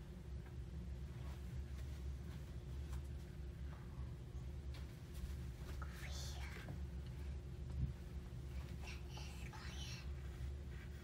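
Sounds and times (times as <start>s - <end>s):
low steady hum: 0.0s - 11.0s
child whispering: 5.7s - 6.8s, 8.7s - 10.4s.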